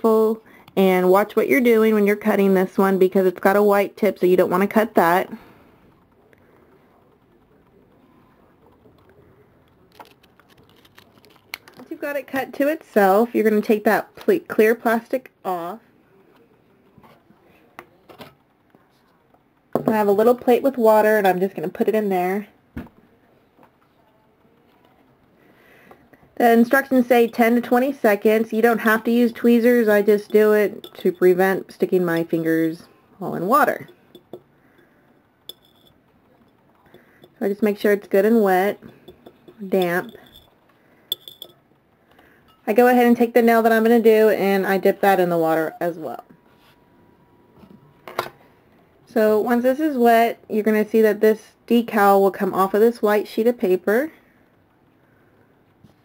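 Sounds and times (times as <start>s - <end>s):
plastic sleeve rustling: 9.8s - 12.0s
tweezers clinking on plate: 30.0s - 31.4s, 33.8s - 34.4s, 38.8s - 40.5s, 41.1s - 41.6s.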